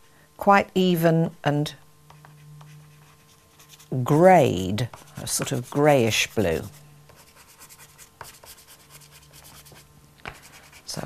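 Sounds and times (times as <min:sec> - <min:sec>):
pastel scratching on paper: 0:02.9 - 0:04.2, 0:04.9 - 0:09.8.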